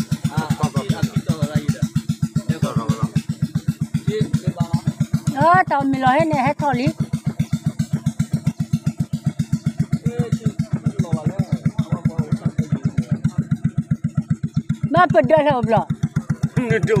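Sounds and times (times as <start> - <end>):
small boat engine chugging: 0.0 - 17.0.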